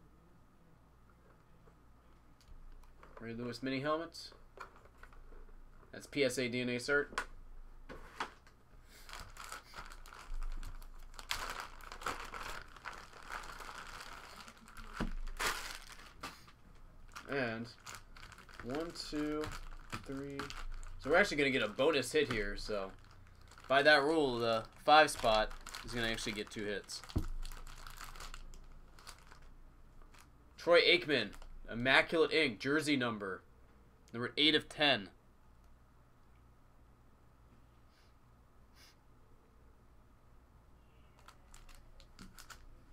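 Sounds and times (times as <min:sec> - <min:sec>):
plastic bag crinkling: 0:08.4 - 0:30.3, 0:41.1 - 0:42.9.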